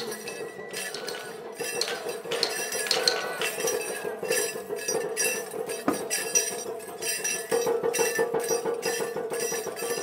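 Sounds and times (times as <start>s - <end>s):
metal rings jingling: 0.0s - 10.0s.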